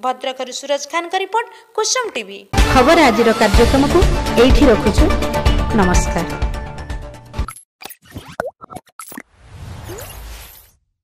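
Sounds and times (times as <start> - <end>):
pops and gliding bloops: 7.4 - 9.3.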